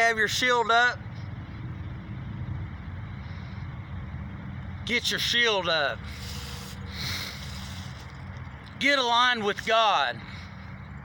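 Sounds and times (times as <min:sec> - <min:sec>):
low motor rumble: 0:00.0 - 0:11.0.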